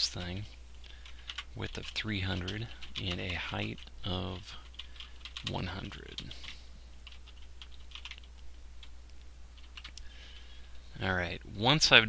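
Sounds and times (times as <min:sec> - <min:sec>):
steady low hum: 0:00.0 - 0:12.0
keyboard typing: 0:00.1 - 0:10.1.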